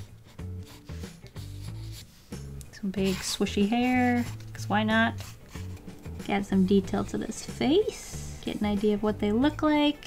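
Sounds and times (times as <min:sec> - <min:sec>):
pencil sketching on paper: 0:00.0 - 0:05.8
background music: 0:00.0 - 0:10.0.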